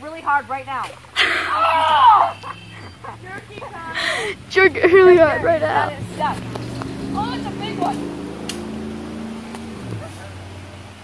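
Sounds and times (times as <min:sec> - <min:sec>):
motorboat engine running: 0:00.0 - 0:11.0.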